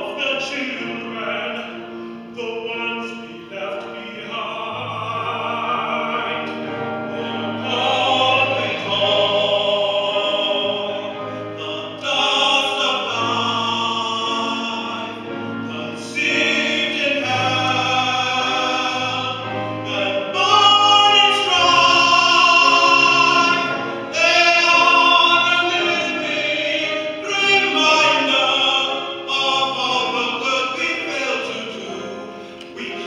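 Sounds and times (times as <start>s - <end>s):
string orchestra: 0.0s - 33.0s
tenor singing a ballad: 0.0s - 33.0s.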